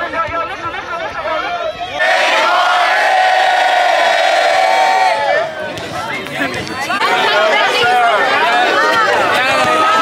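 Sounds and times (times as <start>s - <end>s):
scattered chatter: 0.0s - 10.0s
crowd cheering: 2.0s - 10.0s.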